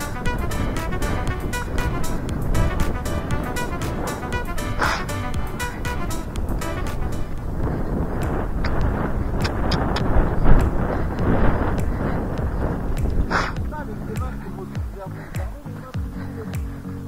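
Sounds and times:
scattered clicks: 0.0s - 14.5s
wind rushing on microphone: 0.0s - 17.0s.

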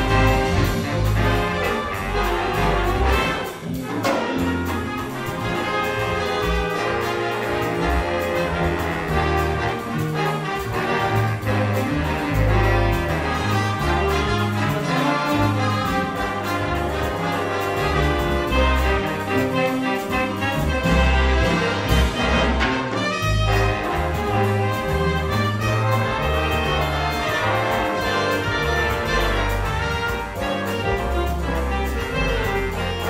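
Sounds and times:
jazz big band playing: 0.0s - 33.0s.

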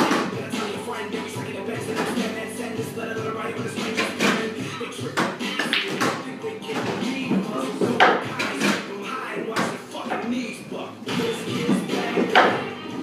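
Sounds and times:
background music: 0.0s - 13.0s
pool balls clicking: 3.6s - 10.4s.

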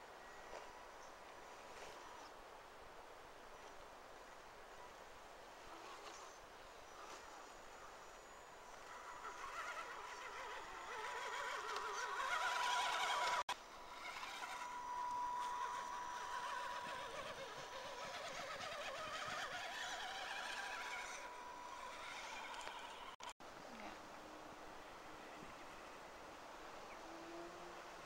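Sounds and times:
electric motor and gears whining: 8.6s - 23.4s.

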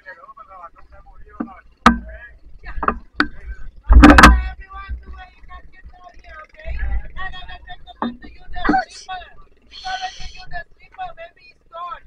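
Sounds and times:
voices chattering: 0.0s - 12.0s
knocks against a boat: 1.4s - 5.2s, 8.0s - 8.9s
heavy thump with low rumble: 1.4s - 5.3s.

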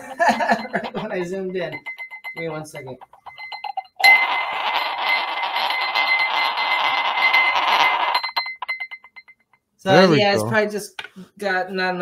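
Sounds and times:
steady high tone: 0.0s - 10.6s
magnet rattling in a glass: 0.4s - 9.4s.

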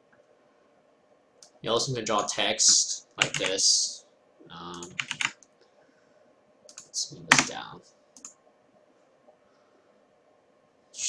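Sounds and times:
computer keyboard typing: 3.2s - 3.6s, 4.8s - 5.5s, 6.7s - 7.6s.

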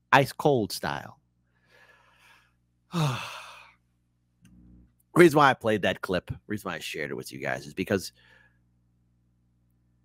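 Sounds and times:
man sighing: 2.9s - 3.8s.

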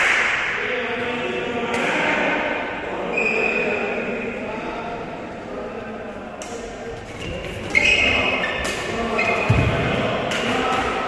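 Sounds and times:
murmur of voices: 0.0s - 11.0s.

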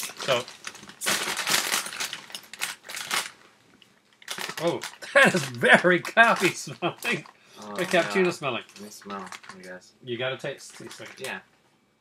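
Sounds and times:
chip bag crinkling: 0.0s - 3.4s, 4.1s - 9.8s, 10.6s - 11.4s.

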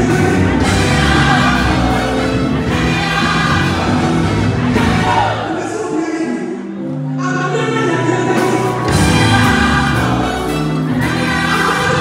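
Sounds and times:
choir singing: 0.0s - 6.7s, 7.5s - 12.0s
gospel band playing: 0.0s - 12.0s.

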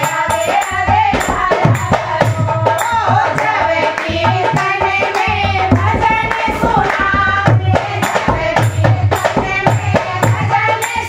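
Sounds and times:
hand drum beat: 0.0s - 11.0s
rhythmic hand-clapping: 0.0s - 11.0s
women singing devotional song: 0.0s - 11.0s.

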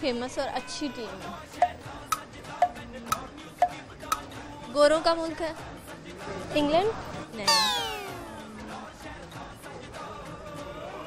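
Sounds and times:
descending comic tone: 7.5s - 8.5s.

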